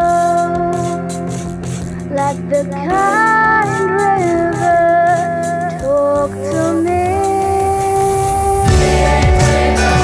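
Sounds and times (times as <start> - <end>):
steady percussion beat: 4.3 - 10.0.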